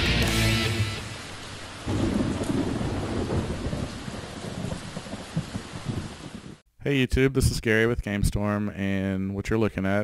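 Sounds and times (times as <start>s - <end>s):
steady rain: 0.1s - 6.6s
thunder rolling: 1.2s - 6.6s.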